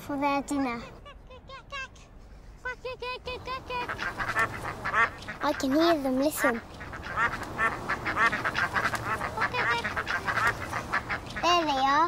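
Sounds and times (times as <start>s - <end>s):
ducks quacking: 2.6s - 12.0s.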